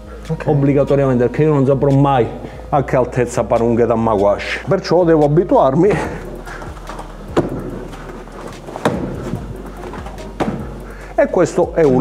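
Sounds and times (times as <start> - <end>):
strikes thudding on rubber discs: 7.3 - 7.9, 8.6 - 11.0.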